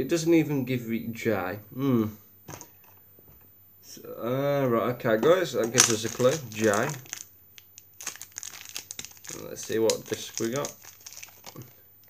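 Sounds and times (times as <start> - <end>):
plastic bag crinkling: 5.6 - 11.8.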